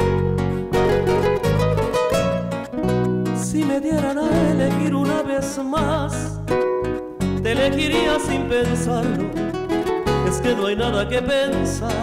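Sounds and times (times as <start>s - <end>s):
acoustic guitar chords: 0.0s - 12.0s
bass guitar line: 0.0s - 12.0s
high plucked guitar melody: 0.0s - 12.0s.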